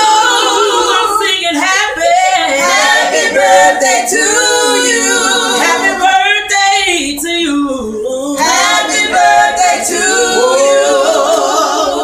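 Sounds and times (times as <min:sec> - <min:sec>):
a cappella group singing: 0:00.0 - 0:12.0.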